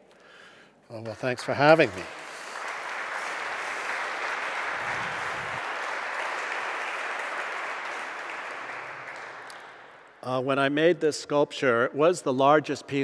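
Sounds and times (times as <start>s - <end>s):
audience applauding: 1.1s - 10.0s.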